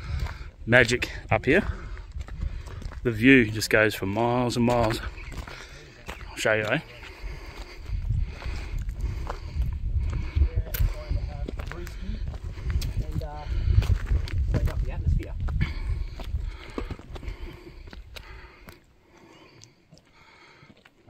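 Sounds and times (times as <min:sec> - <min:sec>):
wind buffeting microphone: 0:00.0 - 0:18.6.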